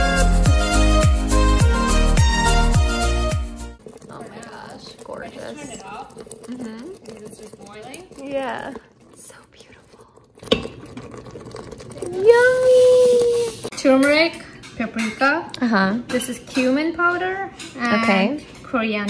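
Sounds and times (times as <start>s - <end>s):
background music: 0.0s - 3.8s.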